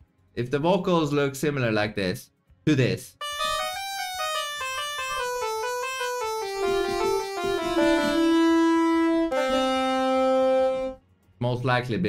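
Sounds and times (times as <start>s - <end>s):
keyboard playing single notes: 3.2s - 11.0s.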